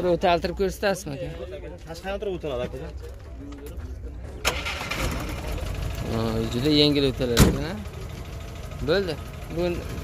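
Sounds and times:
car engine starting and idling: 0:04.4 - 0:10.0.

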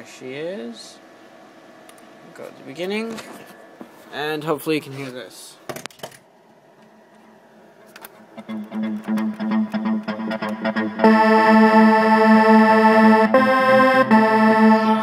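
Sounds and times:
electronic synth music: 0:08.4 - 0:15.0.

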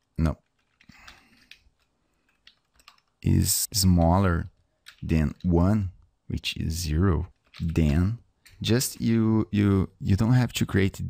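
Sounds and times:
computer keyboard keystrokes: 0:00.4 - 0:03.2, 0:04.8 - 0:05.2.

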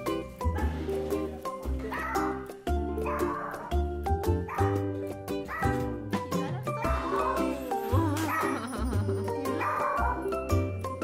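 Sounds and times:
upbeat music with steady beat: 0:03.7 - 0:11.0.

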